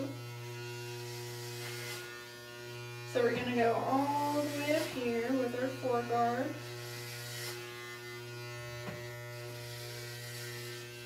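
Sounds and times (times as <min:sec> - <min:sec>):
electric hair clippers humming: 0:00.0 - 0:11.0.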